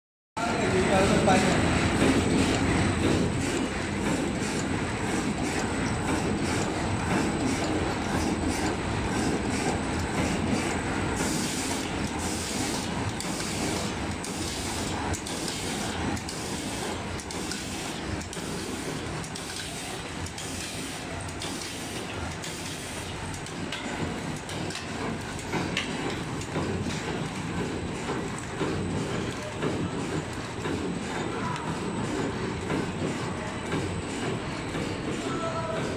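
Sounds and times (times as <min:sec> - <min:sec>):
machine clattering: 0:00.5 - 0:35.9.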